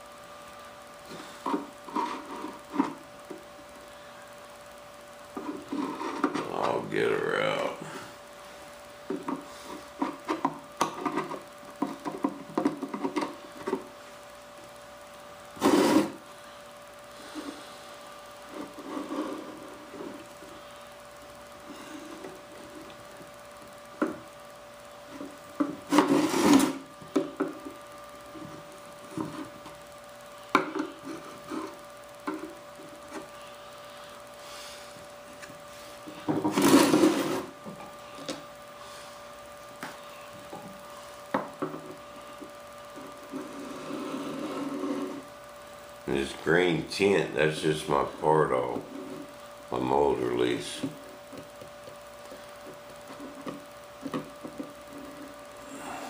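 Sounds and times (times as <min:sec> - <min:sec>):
faint steady hum: 0:00.0 - 0:56.0
metal scraper scraping clay: 0:15.6 - 0:16.2, 0:25.9 - 0:26.8.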